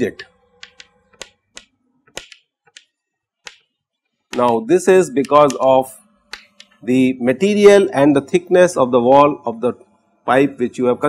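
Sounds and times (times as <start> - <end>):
chalk tapping on chalkboard: 0.1 - 6.8.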